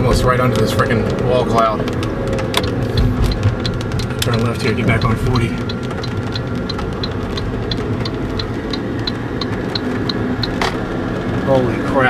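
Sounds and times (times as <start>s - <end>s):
car engine and road rumble: 0.0s - 12.0s
raindrops tapping on car: 0.0s - 12.0s.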